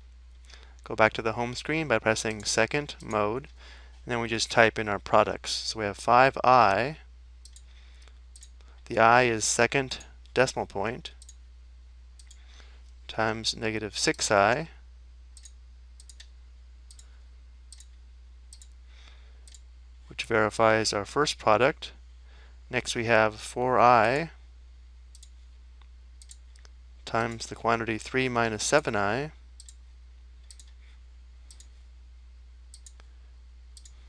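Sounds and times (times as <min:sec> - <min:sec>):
steady low hum: 0:00.0 - 0:34.0
computer mouse clicks: 0:30.4 - 0:30.8, 0:31.5 - 0:31.7, 0:32.7 - 0:33.1.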